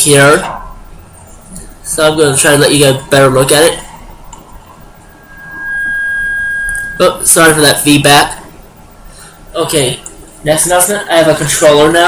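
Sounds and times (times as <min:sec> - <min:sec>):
high-pitched feedback whistle: 0:04.4 - 0:08.4.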